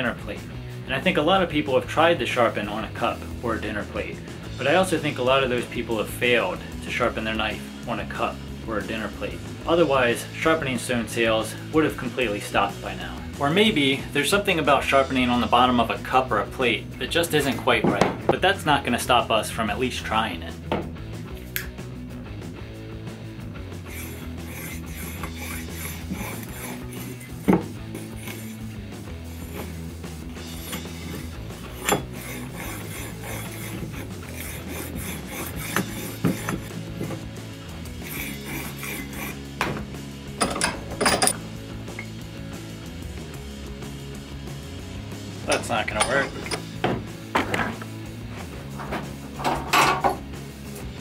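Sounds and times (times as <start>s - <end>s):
background music: 0.0s - 51.0s
knife scraping ceramic: 23.8s - 29.8s, 30.4s - 37.3s, 37.9s - 39.5s.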